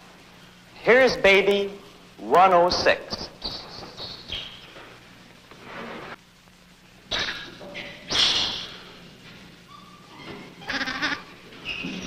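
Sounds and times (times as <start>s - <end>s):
film soundtrack hiss: 0.0s - 12.0s
steady low hum: 0.0s - 12.0s.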